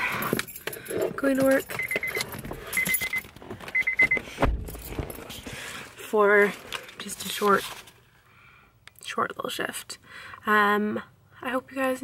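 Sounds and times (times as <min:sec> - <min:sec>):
dashboard warning chime beeping: 0:01.3 - 0:04.3
low thump: 0:04.4 - 0:05.1.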